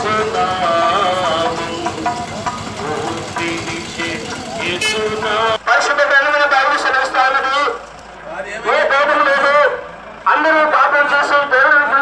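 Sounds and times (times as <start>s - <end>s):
scattered voices: 0.0s - 12.0s
vehicle engine running: 0.0s - 12.0s
man speaking: 5.6s - 12.0s.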